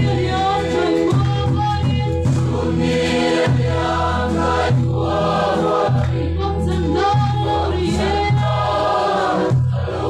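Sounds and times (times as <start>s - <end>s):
men and women singing a hymn: 0.0s - 10.0s.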